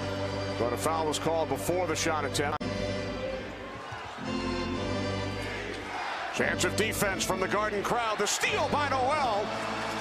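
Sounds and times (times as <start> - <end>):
arena music sustained chords: 0.0 - 8.0.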